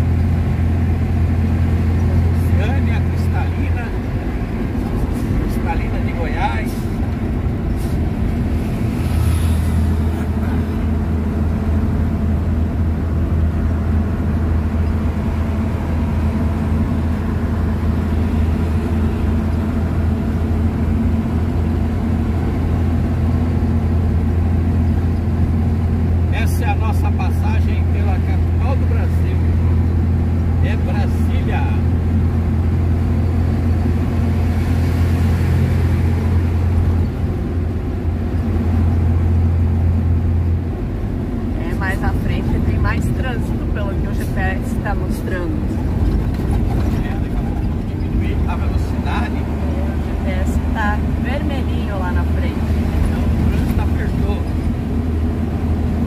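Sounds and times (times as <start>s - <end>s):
vehicle engine drone and road noise: 0.0s - 56.0s.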